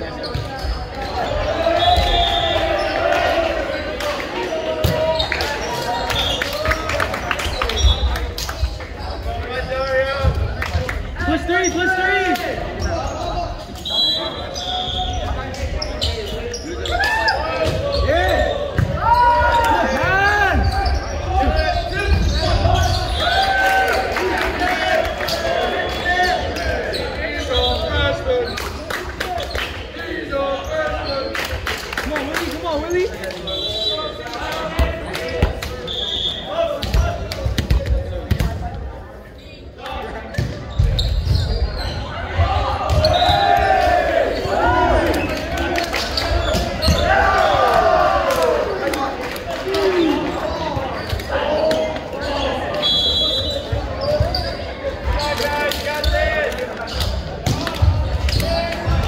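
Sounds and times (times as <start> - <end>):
voices calling out and chattering: 0.0 - 59.0.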